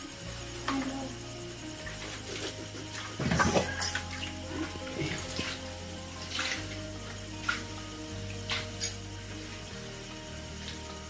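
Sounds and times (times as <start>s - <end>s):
water pouring from a bucket: 1.8s - 9.7s.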